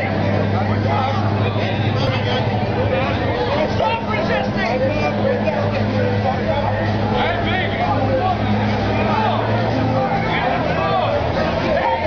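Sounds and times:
low vehicle engine hum: 0:00.0 - 0:12.0
street voices and crowd chatter: 0:00.0 - 0:12.0.

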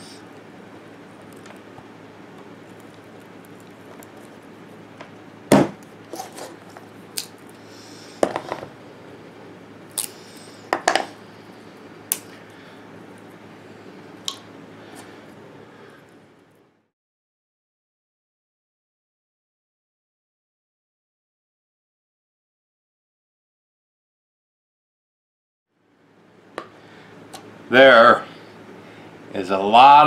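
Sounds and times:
steady background hum: 0:00.0 - 0:16.9, 0:25.7 - 0:30.0.

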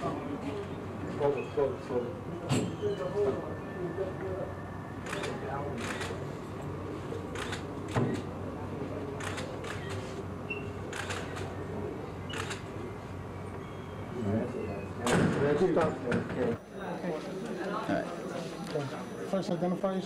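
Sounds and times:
faint background talk: 0:00.0 - 0:13.0.

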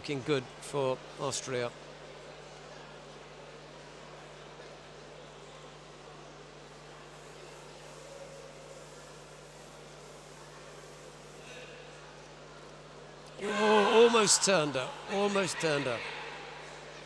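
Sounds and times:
sports hall background noise: 0:00.0 - 0:17.0.

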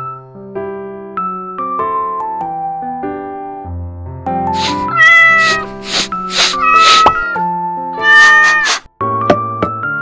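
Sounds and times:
gentle piano music: 0:00.0 - 0:08.0
kitten meowing: 0:04.6 - 0:07.4, 0:08.0 - 0:08.9.

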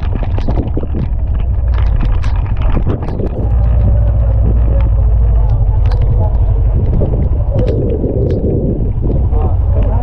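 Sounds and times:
storm wind on microphone: 0:00.0 - 0:10.0.

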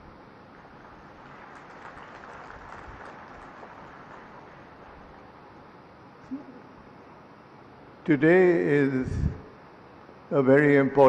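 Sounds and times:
faint audience applause: 0:00.5 - 0:05.6.

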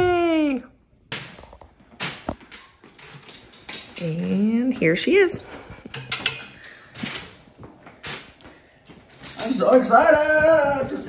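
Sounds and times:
clothes hangers clicking on rod: 0:05.9 - 0:07.3, 0:09.2 - 0:10.0.

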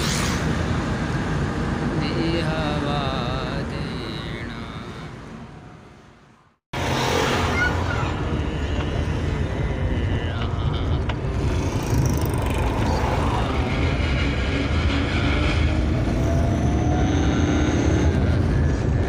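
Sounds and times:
car engine: 0:00.0 - 0:19.0
road noise inside car: 0:00.0 - 0:19.0.

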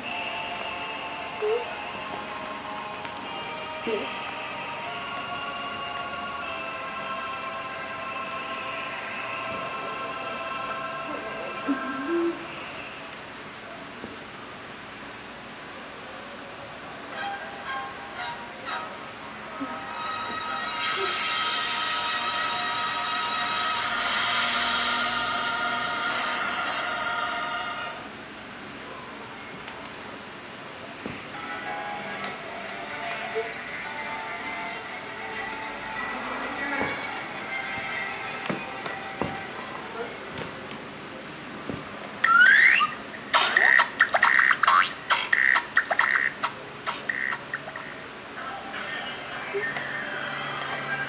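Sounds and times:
sustained chord of tones: 0:00.0 - 0:13.1, 0:17.1 - 0:29.6, 0:31.3 - 0:40.3.

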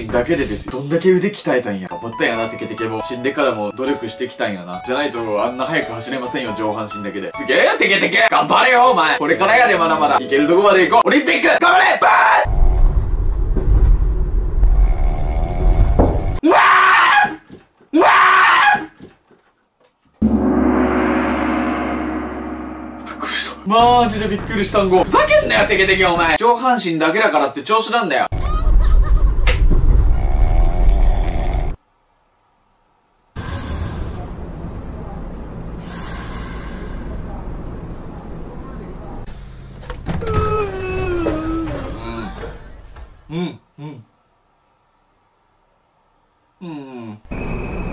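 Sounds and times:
person screaming: 0:16.4 - 0:17.4, 0:18.0 - 0:18.9
train car rumble: 0:33.4 - 0:43.3
train door click: 0:39.7 - 0:41.9.

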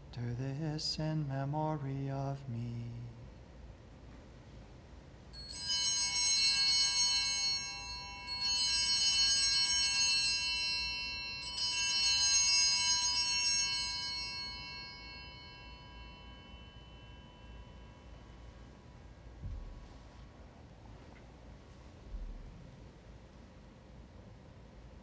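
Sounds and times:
small altar bells ringing: 0:05.3 - 0:19.4.

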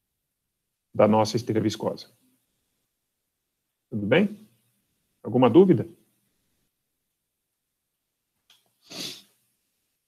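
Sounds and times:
man's hissy burst of breath: 0:08.8 - 0:09.4.

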